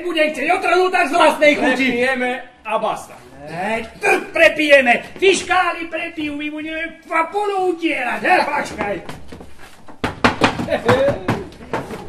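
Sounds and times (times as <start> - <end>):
sharp wooden knocks: 8.5 - 12.0.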